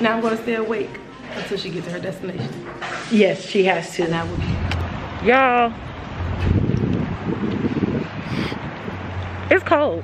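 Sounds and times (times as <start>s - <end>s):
wind buffeting microphone: 4.1s - 9.5s.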